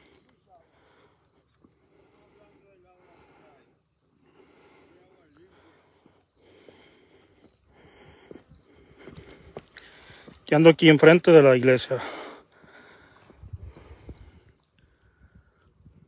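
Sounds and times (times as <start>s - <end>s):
high insect drone: 0.0s - 16.0s.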